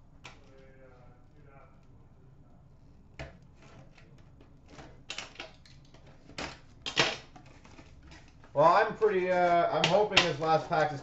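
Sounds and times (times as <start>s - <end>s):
packaging rustling and crackling: 3.5s - 11.0s.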